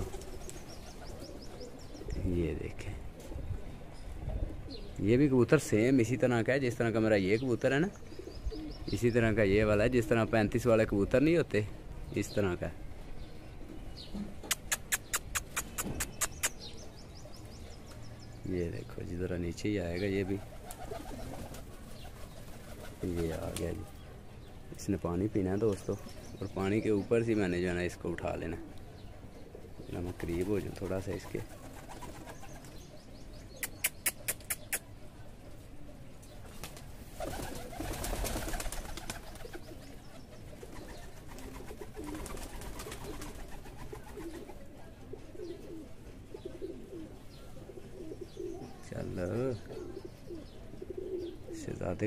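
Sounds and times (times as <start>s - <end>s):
pigeons cooing: 0.0s - 11.0s, 13.2s - 18.2s, 18.8s - 24.6s, 25.2s - 52.0s
sharp clicks: 14.4s - 16.6s.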